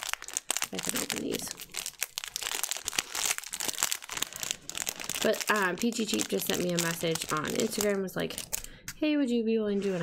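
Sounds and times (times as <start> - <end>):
plastic wrapper crinkling: 0.0 - 8.9.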